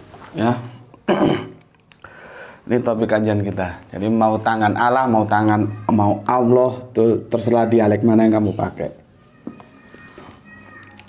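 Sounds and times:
marker squeaking on whiteboard: 7.3s - 11.0s.

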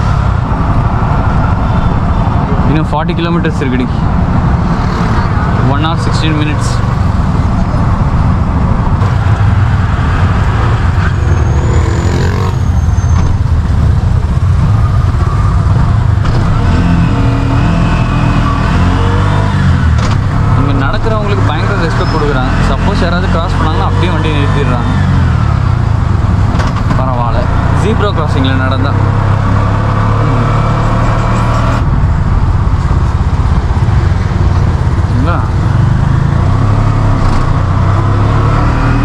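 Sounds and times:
auto-rickshaw engine running: 0.0s - 39.0s.

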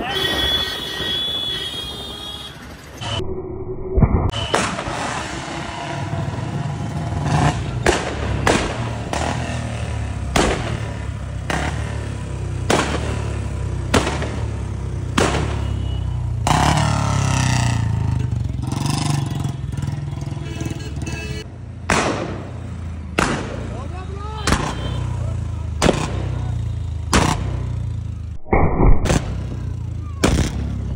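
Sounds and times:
motorcycle engine rumble: 4.2s - 30.9s.

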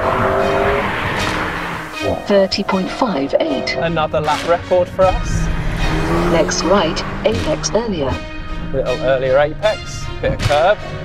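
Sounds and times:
sports car engine: 0.0s - 11.0s
tyre and road noise: 0.0s - 11.0s.

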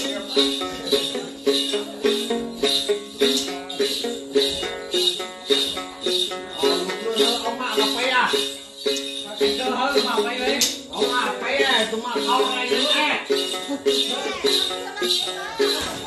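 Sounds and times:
jingle-bell rattle shaken: 0.0s - 16.0s
plucked lute playing: 0.0s - 16.0s.

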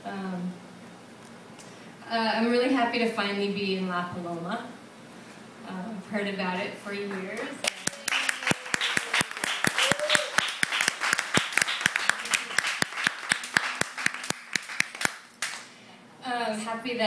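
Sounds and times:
claps into microphone: 7.4s - 15.7s
audience applauding: 7.6s - 15.7s.

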